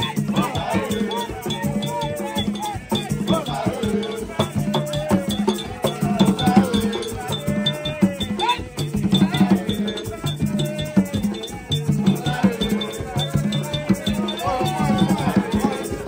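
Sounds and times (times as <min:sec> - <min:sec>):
group of voices singing: 0:00.0 - 0:16.0
hand drums: 0:00.0 - 0:16.0
iron bell ticking: 0:00.0 - 0:16.0.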